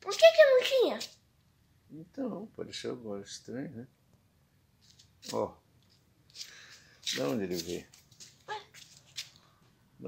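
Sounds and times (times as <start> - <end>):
phone rubbing against clothing: 6.3 - 9.4.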